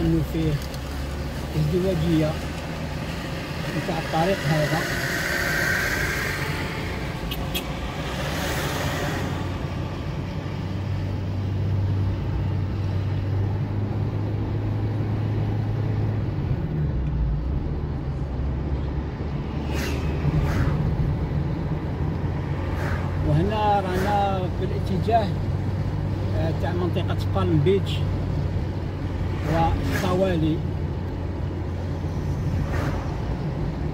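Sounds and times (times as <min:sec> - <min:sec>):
car engine and tyre hum: 0:00.0 - 0:33.9.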